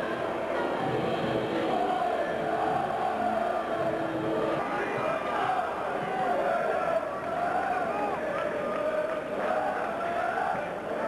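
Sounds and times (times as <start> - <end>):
crowd noise: 0.0 - 11.0
crowd singing or chanting: 0.0 - 11.0.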